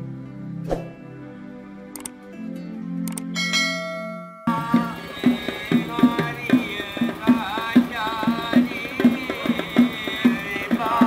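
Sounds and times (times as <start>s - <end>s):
intro music: 0.6s - 11.0s
bell chime: 3.4s - 4.9s.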